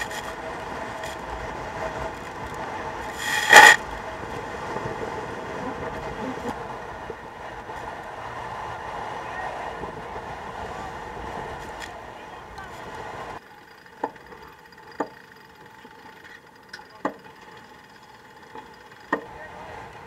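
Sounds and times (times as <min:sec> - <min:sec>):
water rushing along hull: 0:00.0 - 0:20.0
wind: 0:00.0 - 0:20.0.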